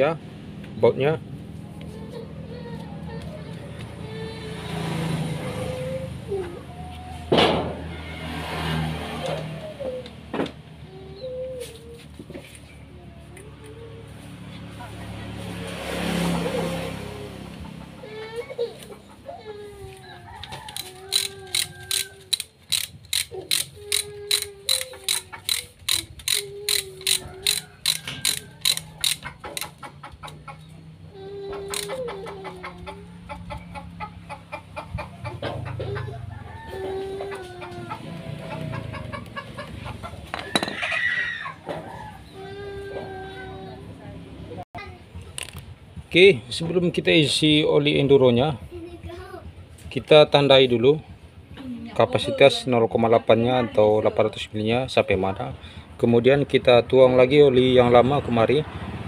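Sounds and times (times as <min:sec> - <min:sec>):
ratchet wrench clicking: 0:20.7 - 0:29.8, 0:31.7 - 0:32.0.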